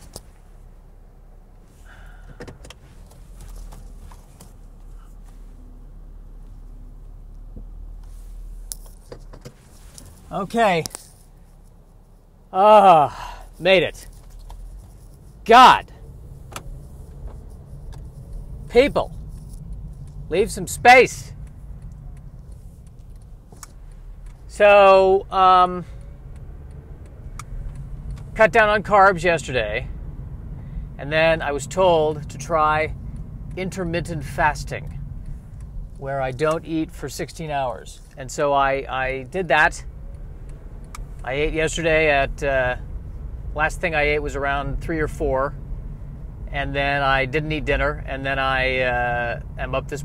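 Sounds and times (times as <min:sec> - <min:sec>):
engine and road rumble: 0:00.0 - 0:50.0
faint clicks: 0:21.4 - 0:24.4, 0:25.9 - 0:28.3.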